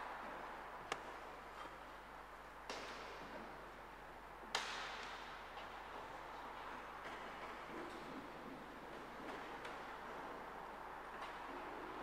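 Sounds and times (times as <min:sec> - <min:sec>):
faint room hiss: 0:00.0 - 0:12.0.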